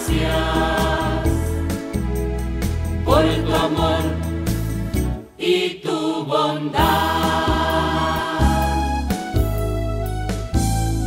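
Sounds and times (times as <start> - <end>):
voices singing a hymn: 0.0 - 1.7, 3.0 - 4.7, 5.3 - 8.9
steady bass: 0.0 - 5.2, 6.8 - 11.0
keyboard accompaniment: 0.0 - 5.4, 6.8 - 11.0.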